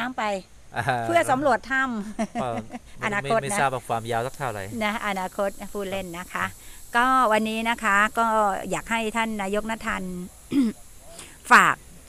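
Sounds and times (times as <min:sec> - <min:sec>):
person speaking: 0:00.8 - 0:05.1
throat clearing: 0:10.5 - 0:10.8.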